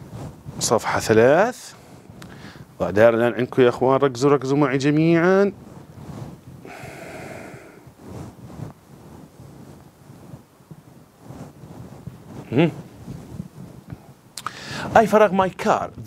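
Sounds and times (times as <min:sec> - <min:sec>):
man exhaling breathily: 0:06.6 - 0:07.9, 0:14.4 - 0:14.9
man humming: 0:12.5 - 0:12.8.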